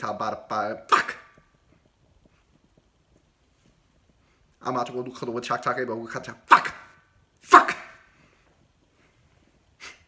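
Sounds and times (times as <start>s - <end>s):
shouted word echoing: 0.6s - 1.4s, 6.3s - 8.1s.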